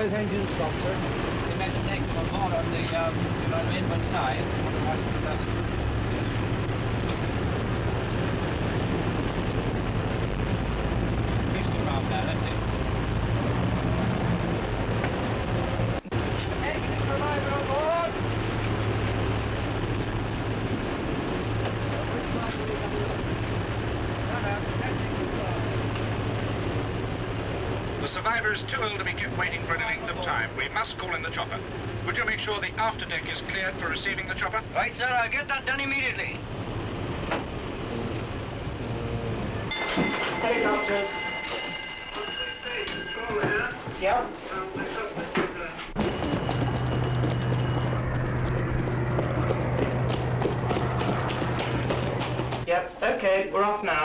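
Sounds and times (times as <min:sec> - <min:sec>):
engine drone: 0:00.0 - 0:43.7, 0:45.8 - 0:52.7
film soundtrack hiss: 0:00.0 - 0:54.0.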